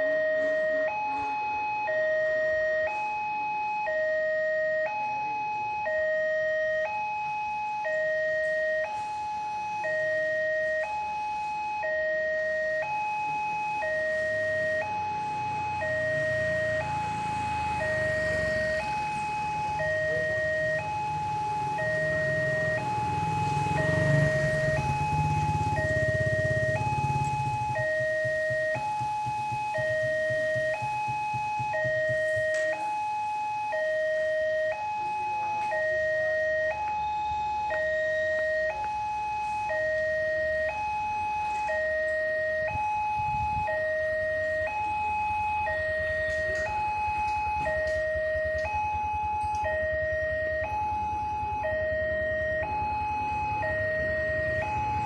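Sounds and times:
two-tone crossing alarm: 0:00.0 - 0:55.0.

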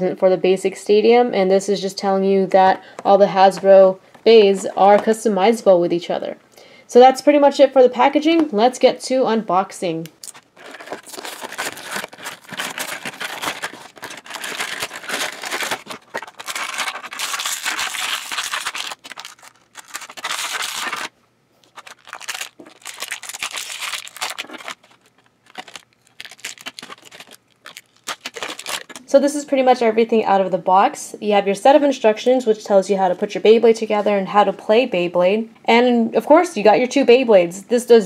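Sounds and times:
plastic packaging crinkling and tearing: 0:10.2 - 0:29.0.

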